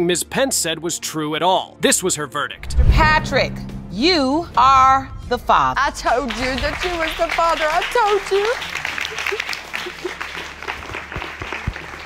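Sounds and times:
audience applauding: 6.2 - 12.0.

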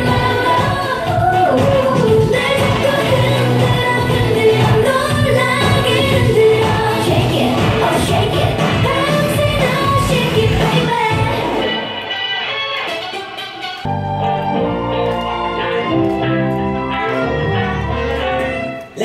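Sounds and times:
pop dance song with female vocals: 0.0 - 11.9.

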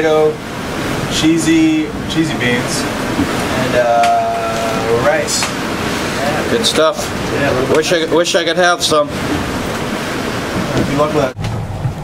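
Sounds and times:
rushing wind and water: 0.0 - 12.0.

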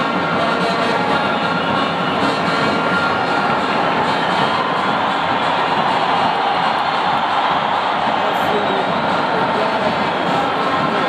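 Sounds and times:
stadium crowd roar: 0.0 - 11.0.

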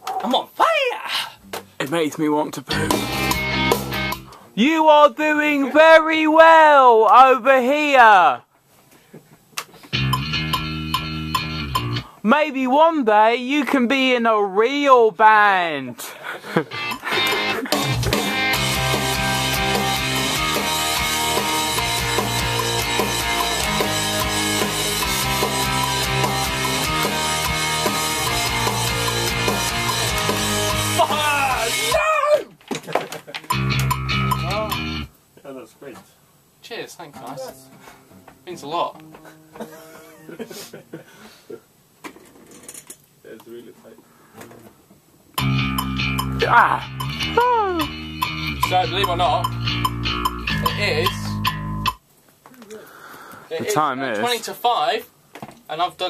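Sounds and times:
bass guitar notes plucked: 2.7 - 4.3, 10.0 - 12.1, 17.5 - 31.9, 33.5 - 35.1, 45.4 - 52.0
rock backing track with drums: 2.7 - 4.3, 9.8 - 12.1, 16.6 - 32.0, 33.5 - 35.1, 45.4 - 52.0
person singing wavering: 46.4 - 48.0.

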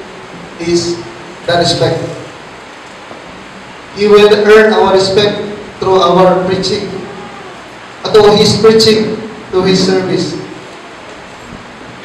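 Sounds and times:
room and microphone hiss: 0.0 - 12.0
man's amplified speech: 0.6 - 2.3, 4.0 - 10.6.

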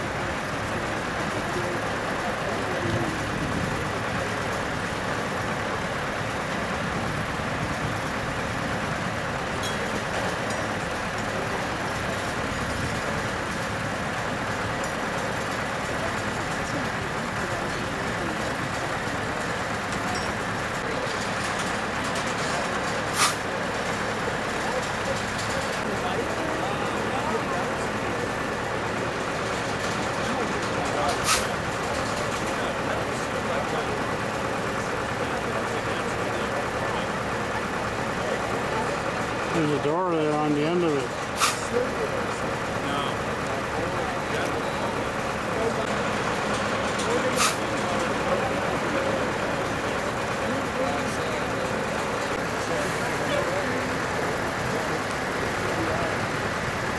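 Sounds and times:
diesel power unit running: 0.0 - 56.9
faint voices: 0.0 - 56.9.

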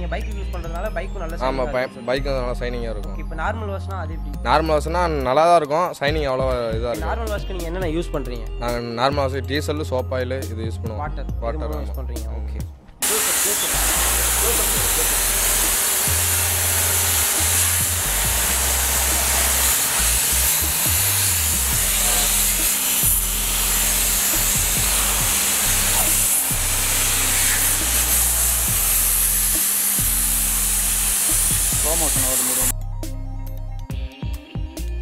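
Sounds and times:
background music with bass: 0.0 - 35.0
spray gun hissing: 13.0 - 32.7.

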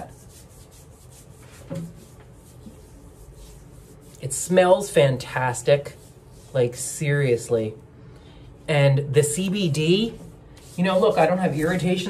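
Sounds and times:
hand rubbing skin: 0.0 - 7.1, 9.4 - 12.0.

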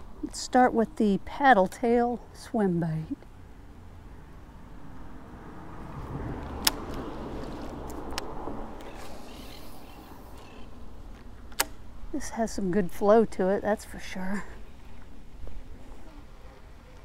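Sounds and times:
reel clicking: 8.8 - 10.6
fishing reel whirring: 8.8 - 10.7.

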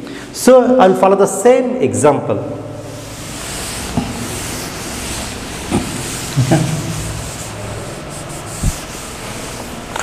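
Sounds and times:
cloth duster rubbing a chalkboard: 2.8 - 10.0.

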